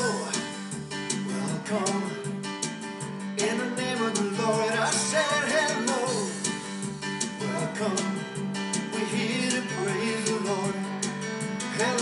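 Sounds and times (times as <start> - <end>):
steady beat: 0.0 - 12.0
strummed guitar: 0.0 - 12.0.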